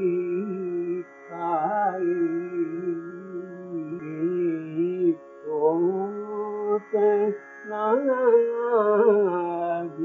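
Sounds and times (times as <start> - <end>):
man singing long notes: 0.0 - 10.0.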